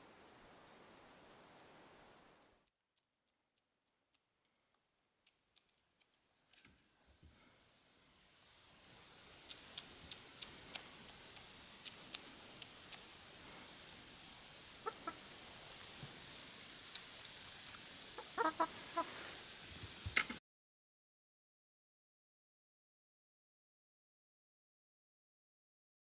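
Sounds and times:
chickens pecking grain: 3.9 - 7.5, 8.7 - 20.4
chicken clucking: 14.8 - 15.4, 18.1 - 19.4.

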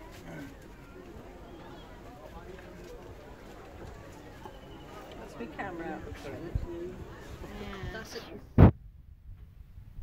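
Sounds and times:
people talking: 0.0 - 8.5.

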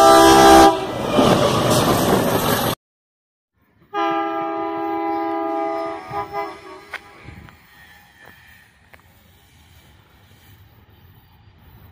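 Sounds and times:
train air horn blast: 0.0 - 1.0, 3.9 - 8.8.

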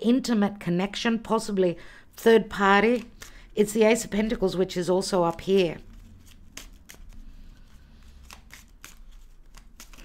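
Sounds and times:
cards being shuffled: 2.8 - 3.6, 5.1 - 10.0
soft card clicks: 6.2 - 7.2, 8.2 - 10.0.

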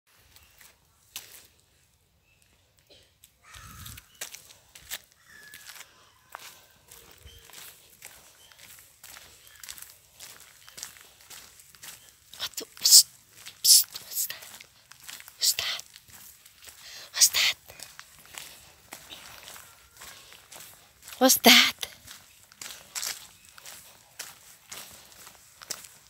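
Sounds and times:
footsteps on gritty tarmac: 0.1 - 1.6, 3.2 - 26.0.

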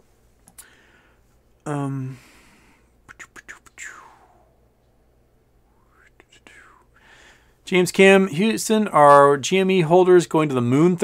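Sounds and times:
man whispering: 1.6 - 2.3, 3.0 - 4.6, 5.7 - 7.0.

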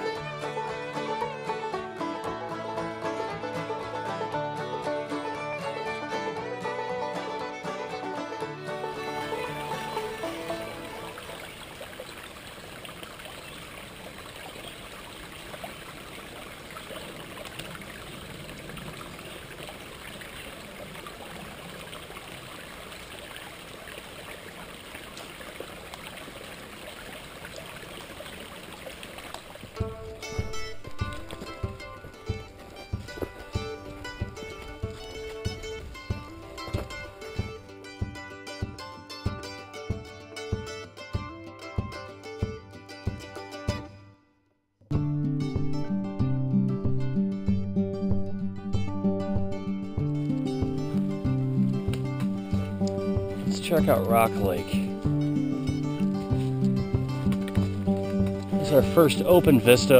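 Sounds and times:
background music: 0.0 - 11.5, 29.7 - 44.2, 44.9 - 59.9
stream running over stones: 7.2 - 38.7, 49.8 - 59.9.

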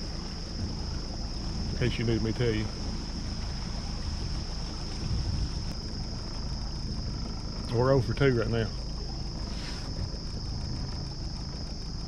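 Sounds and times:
boat motor and water rumble: 0.0 - 12.0
insects droning: 0.0 - 12.0.

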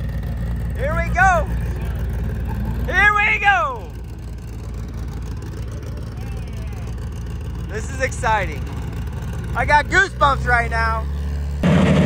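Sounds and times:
race car engine idling: 0.0 - 12.0.

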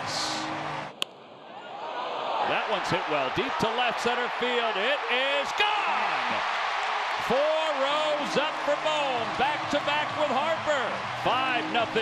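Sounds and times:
ballpark crowd noise: 0.4 - 12.0.

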